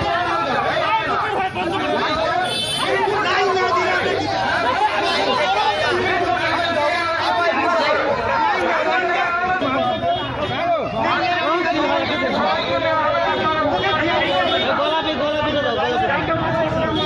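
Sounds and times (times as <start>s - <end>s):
crowd of men talking: 0.0s - 17.0s.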